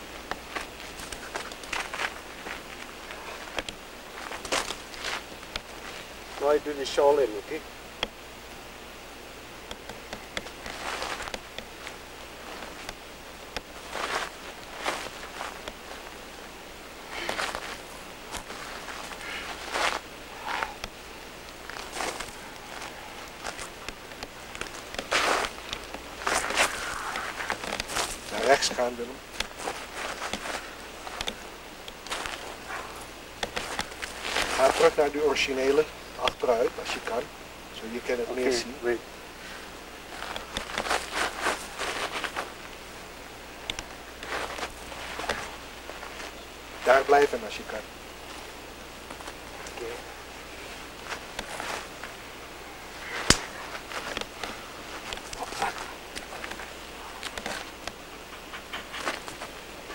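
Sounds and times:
footsteps on rocky ground: 0:00.4 - 0:06.6, 0:10.4 - 0:13.0, 0:13.6 - 0:16.3, 0:17.1 - 0:20.8, 0:21.6 - 0:35.1, 0:39.5 - 0:43.0, 0:43.8 - 0:47.4, 0:48.2 - 0:59.6
sharp clicks: 0:29.4 - 0:32.3.

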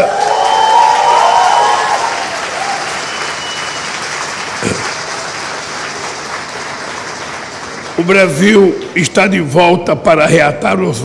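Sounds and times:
audience applauding: 0:00.0 - 0:09.5.

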